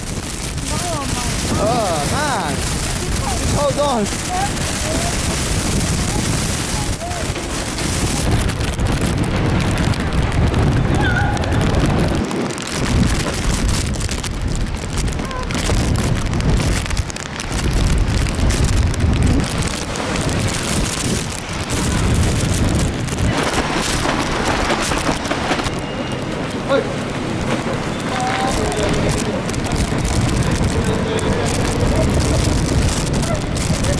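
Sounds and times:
heavy rain on pavement: 0.0 - 33.9
storm wind gusting: 0.0 - 33.9.

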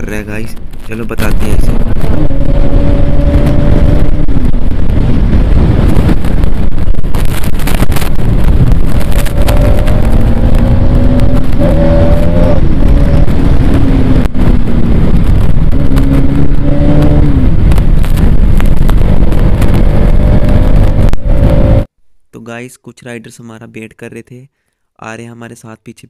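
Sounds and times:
wind rumble on microphone: 0.0 - 22.0
motorcycle engine running: 1.4 - 21.9.

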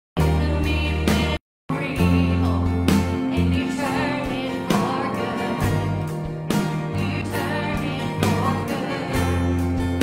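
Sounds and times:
women singing: 0.2 - 6.1, 6.9 - 9.6
guitars: 0.2 - 10.0.

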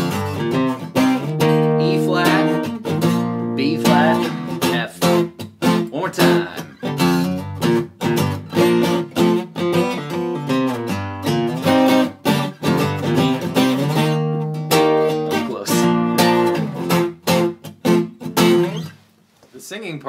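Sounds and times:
acoustic guitar strummed: 0.0 - 19.1.

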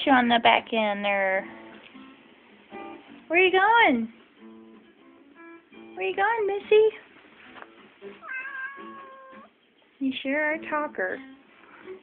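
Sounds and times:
cat meowing: 8.2 - 9.6.

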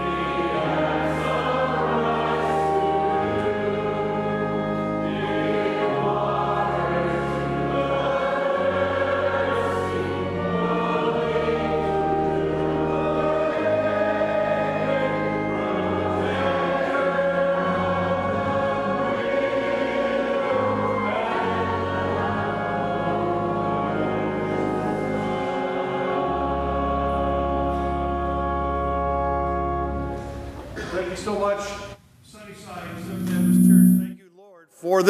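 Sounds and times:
pipe organ playing a hymn: 0.0 - 30.8.

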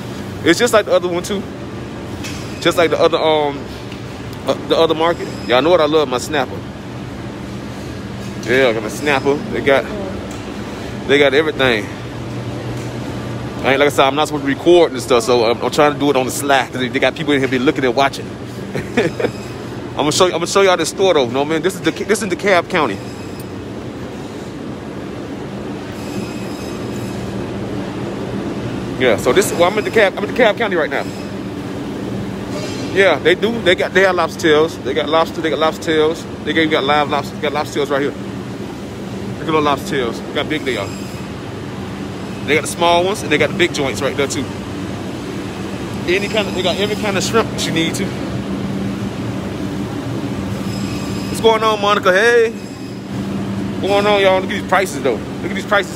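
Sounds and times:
mechanical rumble with low hum: 0.0 - 55.9.

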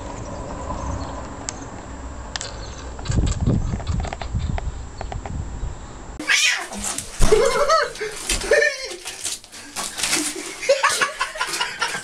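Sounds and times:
cat meowing: 6.2 - 7.0.

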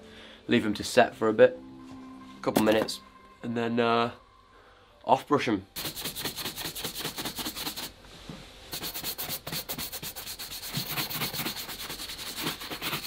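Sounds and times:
shoe brush buffing boot: 5.8 - 7.9, 8.7 - 13.0.

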